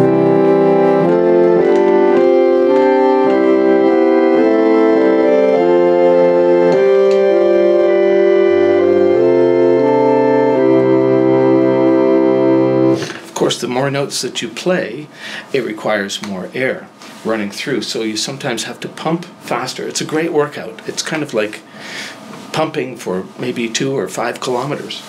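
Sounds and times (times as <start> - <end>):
low bass organ note: 0.0 - 13.2
reed organ playing slow chords: 0.0 - 13.3.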